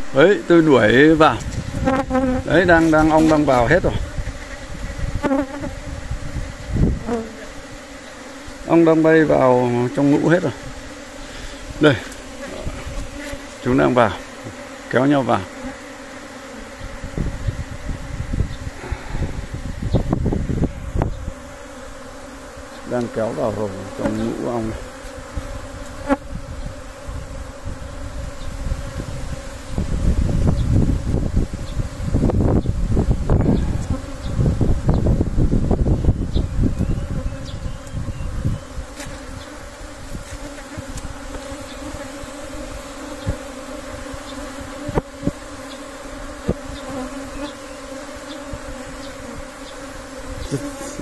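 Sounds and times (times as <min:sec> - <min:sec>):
honeybees buzzing: 0:00.0 - 0:51.0.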